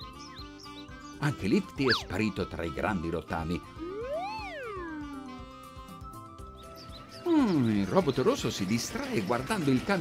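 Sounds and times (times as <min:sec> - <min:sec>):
light background music: 0:00.0 - 0:10.0
cartoon pitch glide: 0:01.8 - 0:02.1, 0:03.8 - 0:05.6.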